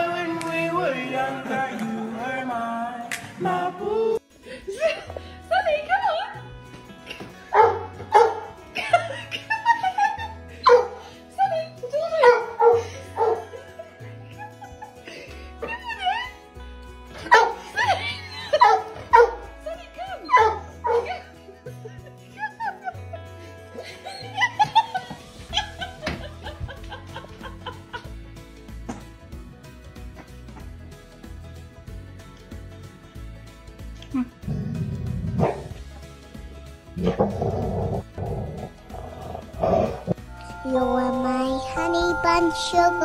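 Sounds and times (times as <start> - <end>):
dog barking: 7.5 - 8.5, 10.6 - 11.0, 12.2 - 13.5, 17.2 - 17.6, 18.6 - 19.5, 20.3 - 21.2, 35.4 - 35.7
background music with bass line: 20.3 - 43.0.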